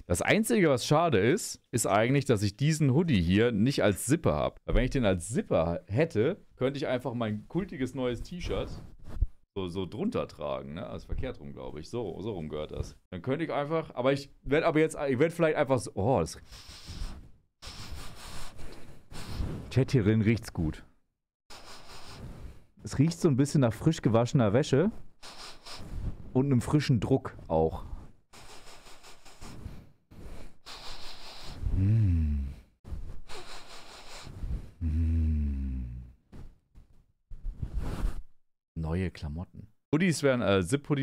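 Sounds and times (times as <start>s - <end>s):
man sniffing fabric: 16.4s - 19.7s, 21.5s - 22.7s, 25.1s - 26.3s, 27.9s - 36.2s, 37.4s - 38.4s
low voiced exhales: 28.4s - 32.7s.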